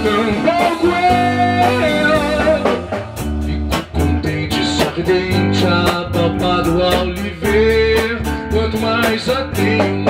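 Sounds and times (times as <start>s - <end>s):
bass guitar: 0.0s - 10.0s
steady drum beat: 0.0s - 10.0s.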